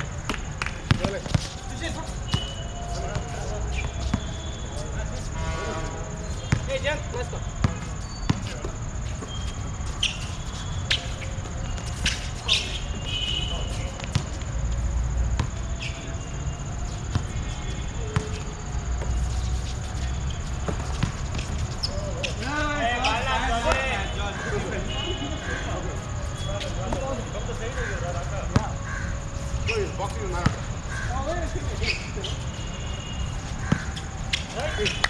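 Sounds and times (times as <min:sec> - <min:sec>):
sneakers squeaking: 0:00.1 - 0:05.4, 0:06.1 - 0:27.6, 0:28.5 - 0:31.0, 0:31.6 - 0:35.0
players calling out: 0:00.2 - 0:35.0
basketball bouncing on hard court: 0:00.3 - 0:01.5.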